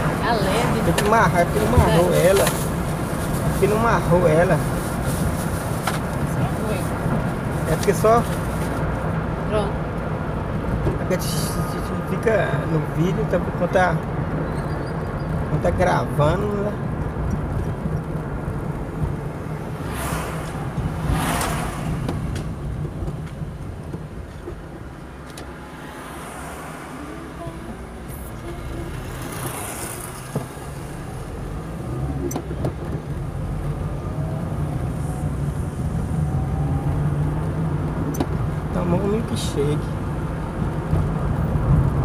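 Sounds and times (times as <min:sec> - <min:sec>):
car engine and road noise: 0:00.0 - 0:42.0
rising engine tone: 0:33.5 - 0:37.8.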